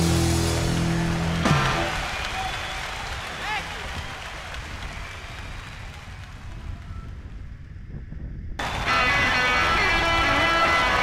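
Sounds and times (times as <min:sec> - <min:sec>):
guitar music: 0:00.0 - 0:01.8
wind buffeting microphone: 0:03.1 - 0:11.0.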